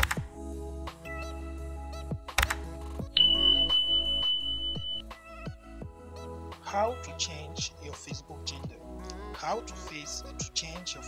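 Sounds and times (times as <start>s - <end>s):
background music with beat: 0.0s - 11.0s
high electronic beep: 3.2s - 5.1s.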